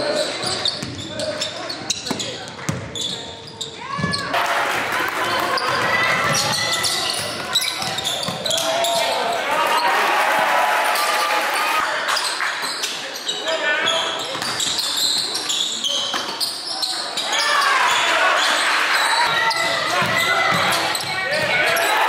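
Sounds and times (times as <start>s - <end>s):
voices of players and spectators: 0.0s - 22.0s
basketball bouncing on hardwood: 20.0s - 21.6s.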